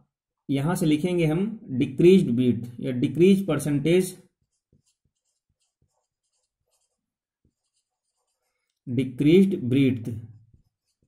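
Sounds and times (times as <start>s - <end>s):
marker scratching on whiteboard: 4.2s - 8.8s, 10.3s - 11.0s.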